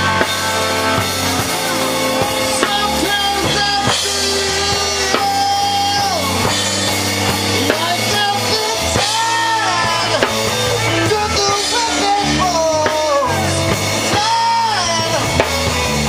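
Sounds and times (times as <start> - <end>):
bass line: 0.0 - 16.0
bending lead guitar notes: 0.0 - 16.0
drum kit: 0.0 - 16.0
electric guitar: 0.0 - 16.0.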